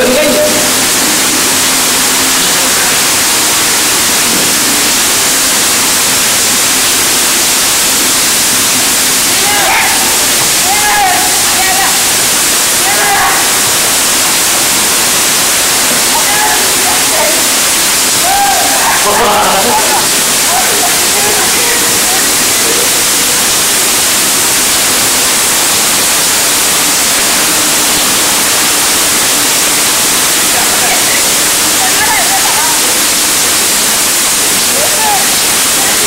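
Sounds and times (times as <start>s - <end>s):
heavy rain hissing: 0.0s - 36.0s.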